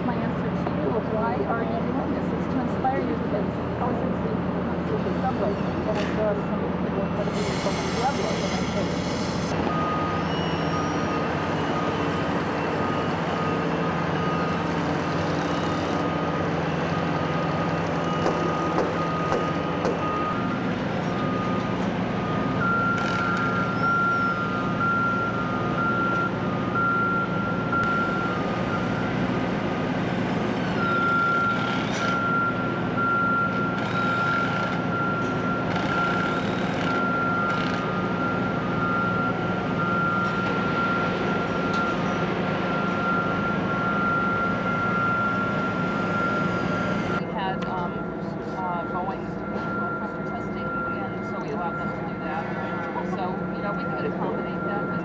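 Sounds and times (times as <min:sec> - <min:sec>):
heavy construction machinery running: 0:00.0 - 0:55.0
backup alarm beeping: 0:09.6 - 0:14.6, 0:16.6 - 0:29.2, 0:30.8 - 0:55.0
higher backup alarm beeping: 0:09.6 - 0:14.6, 0:16.1 - 0:29.4, 0:30.8 - 0:55.0.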